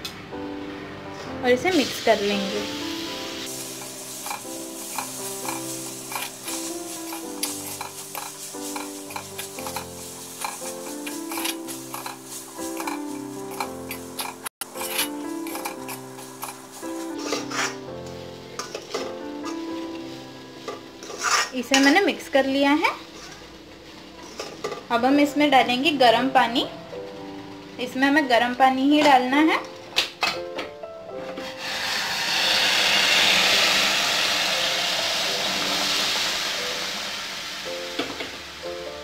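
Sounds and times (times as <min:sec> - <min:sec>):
background music held notes: 0:00.0 - 0:39.0
spoon scraping semolina in pan: 0:03.5 - 0:17.8, 0:20.7 - 0:22.0.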